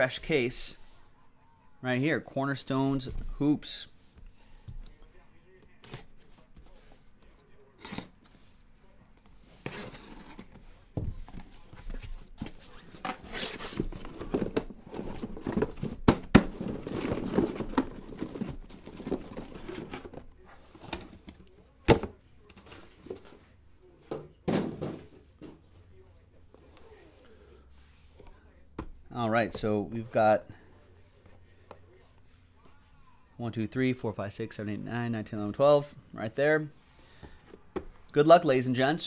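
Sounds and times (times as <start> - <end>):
knocks and scrapes of boxes: 9.4 - 23.4.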